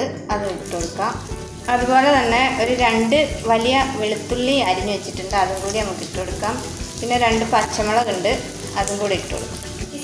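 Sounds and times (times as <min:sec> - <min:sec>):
vegetables sizzling in hot oil: 0:00.4 - 0:10.0.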